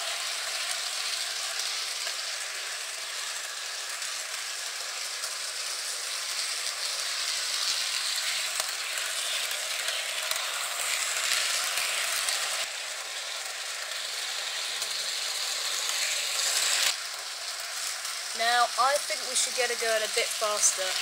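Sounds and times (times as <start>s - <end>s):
model train motor whirring: 0.0s - 21.0s.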